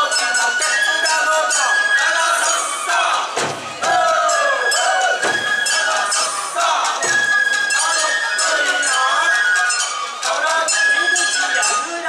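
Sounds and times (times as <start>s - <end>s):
bamboo flute melody: 0.0s - 12.0s
voices calling out: 0.0s - 12.0s
drum strokes: 2.2s - 8.8s.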